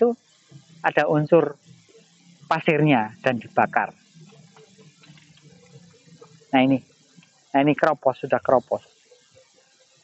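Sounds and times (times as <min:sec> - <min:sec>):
even hiss: 0:00.0 - 0:10.0
faint low hum: 0:00.0 - 0:10.0.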